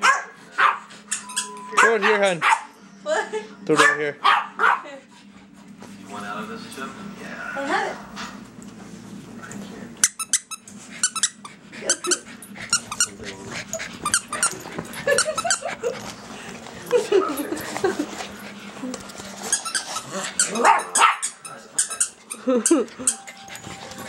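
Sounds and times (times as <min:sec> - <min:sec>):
toy squeaker squeaking: 0:01.1 - 0:02.0, 0:10.0 - 0:13.2, 0:14.0 - 0:15.6, 0:21.2 - 0:24.0.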